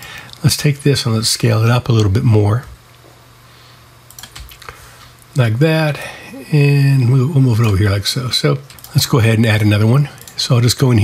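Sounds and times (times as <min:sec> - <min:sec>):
computer keyboard clicks: 0:04.1 - 0:04.7, 0:08.7 - 0:09.0.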